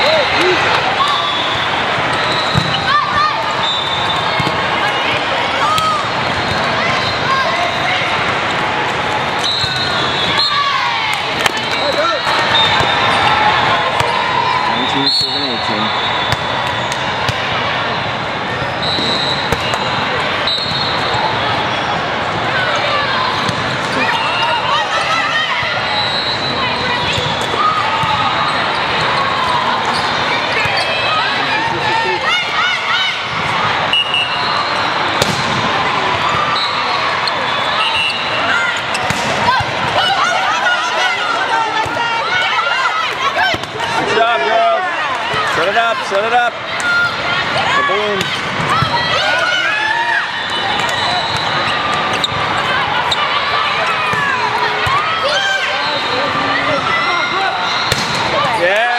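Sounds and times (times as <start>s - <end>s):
voices chattering and calling out: 0.0s - 58.9s
sneakers squeaking on courts: 1.0s - 8.1s, 9.4s - 10.7s, 11.4s - 17.0s, 18.5s - 31.5s, 33.4s - 40.2s, 50.4s - 58.8s
balls slapping and bouncing: 2.0s - 2.9s, 4.1s - 6.6s, 11.1s - 13.3s, 19.0s - 19.9s, 35.2s - 36.4s, 38.9s - 40.0s, 57.9s - 58.4s.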